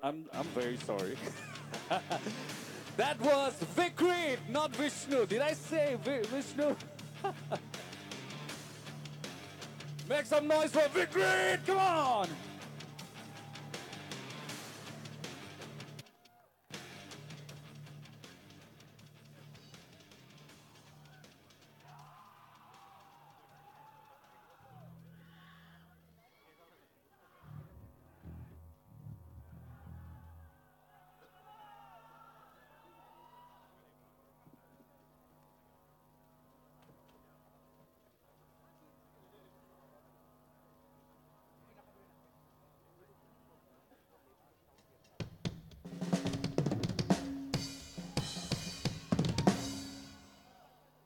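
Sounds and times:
loud music: 0.4s - 16.0s, 45.9s - 50.5s
crowd voices and whoops: 12.7s - 14.2s, 20.7s - 26.8s, 29.6s - 33.8s
amplifier hum: 27.4s - 30.7s.

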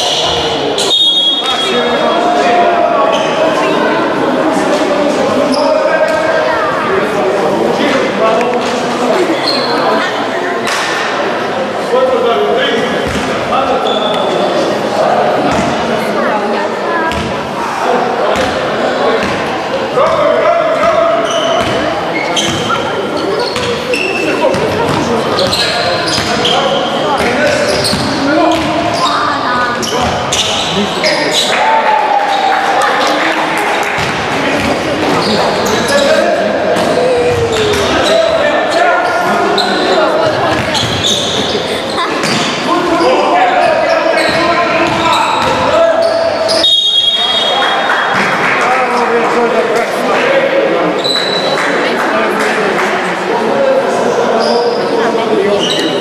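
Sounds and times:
high whistle: 0.0s - 1.8s, 46.5s - 47.8s
players calling out: 0.0s - 56.0s
basketball bouncing on court: 13.0s - 13.3s, 17.1s - 17.3s, 20.8s - 22.8s, 23.5s - 23.8s, 27.2s - 29.1s, 34.0s - 34.9s, 36.8s - 38.0s, 40.2s - 41.1s, 44.2s - 45.6s.

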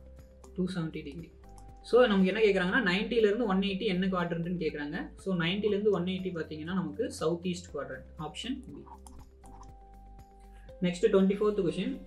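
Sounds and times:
faint background music: 0.0s - 12.0s
person speaking: 0.6s - 9.7s.

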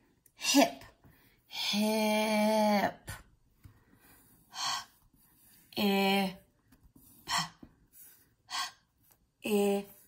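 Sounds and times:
woman making breathy speech sounds: 0.4s - 0.9s, 9.4s - 10.0s.

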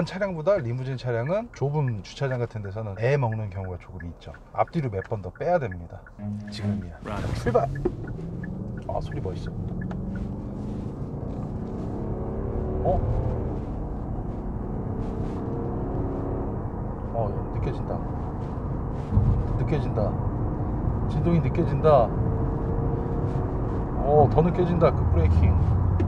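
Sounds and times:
road noise: 0.0s - 26.0s
car engine accelerating from inside: 6.3s - 26.0s.

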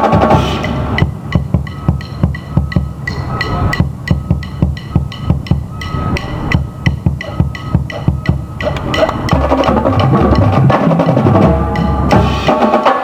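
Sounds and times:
bass drum beats: 3.8s - 12.4s.

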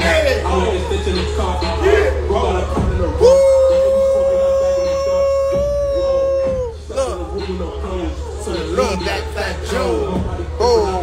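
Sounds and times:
music with deep bass: 0.0s - 11.0s.

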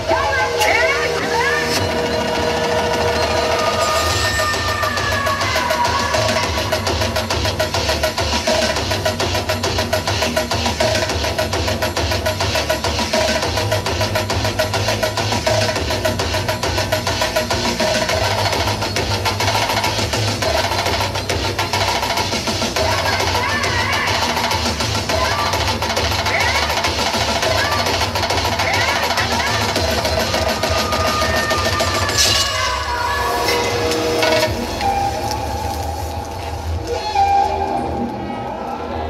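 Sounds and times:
dance music with drum beat: 0.0s - 36.8s.

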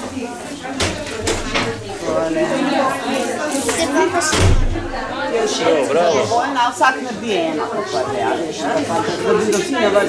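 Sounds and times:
chatter of children and adults: 0.0s - 10.0s.

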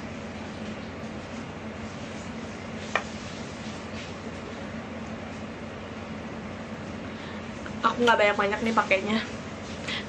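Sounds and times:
steady hum and hiss: 0.0s - 10.0s.

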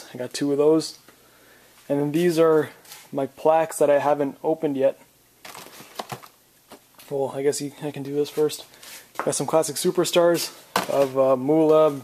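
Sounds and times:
plastic packaging rustling: 5.4s - 7.2s.

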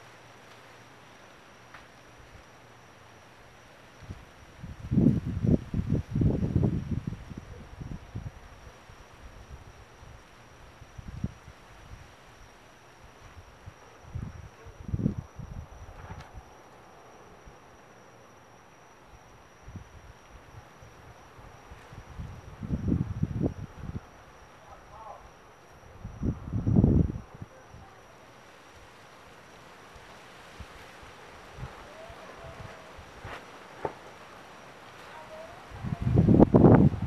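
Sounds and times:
faint high-pitched tone: 0.6s - 33.4s, 34.2s - 37.0s
wind buffeting microphone: 4.0s - 8.6s, 21.9s - 24.2s, 25.9s - 27.9s, 35.1s - 37.0s.

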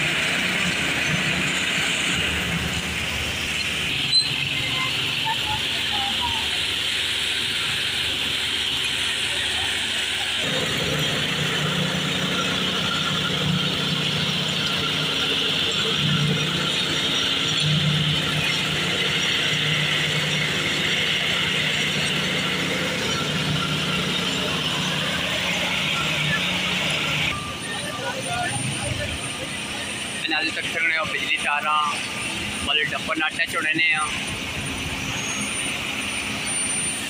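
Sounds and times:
paver engine running: 0.0s - 37.0s.

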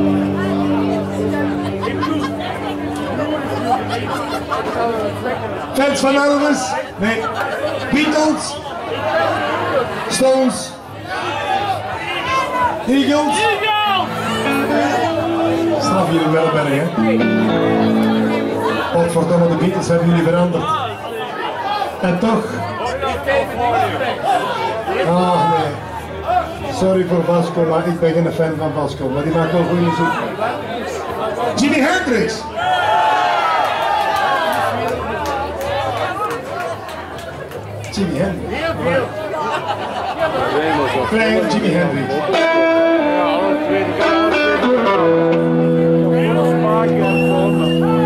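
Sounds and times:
band's held chord ringing: 0.0s - 5.4s, 13.6s - 19.3s
crowd chatter: 0.0s - 48.0s
man talking over a microphone: 5.7s - 8.6s, 15.4s - 17.2s, 18.9s - 20.9s, 40.6s - 42.4s.

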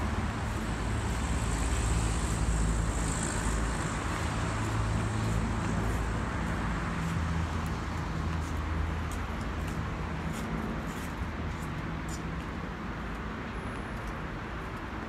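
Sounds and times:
passing cars: 0.0s - 11.6s.

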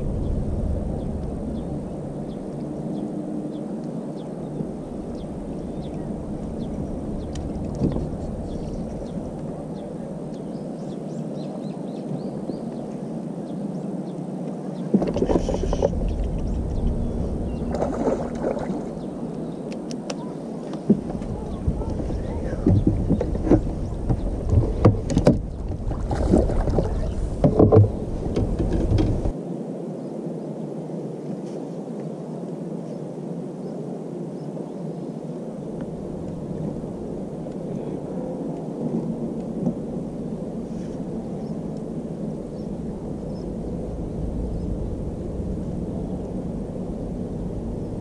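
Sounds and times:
low rumble: 0.0s - 11.3s, 15.1s - 19.7s, 20.8s - 29.4s, 35.6s - 48.0s
knocks and splashing: 17.6s - 19.0s, 20.7s - 29.3s.

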